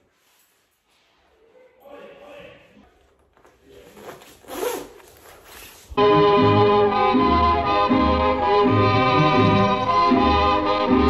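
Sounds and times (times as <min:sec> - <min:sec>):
clothing rubbing: 0:02.9 - 0:06.0
jacket zipper pulled: 0:03.7 - 0:06.0.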